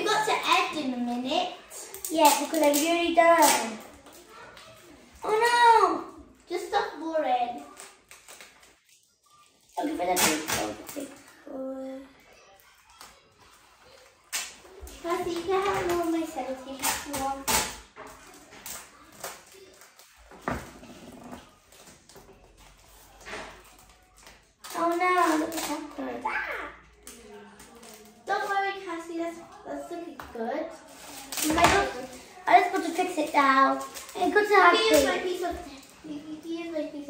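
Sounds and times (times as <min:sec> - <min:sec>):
children talking: 0:00.0 - 0:37.0
plastic bags crinkling: 0:26.9 - 0:28.5, 0:30.8 - 0:36.6.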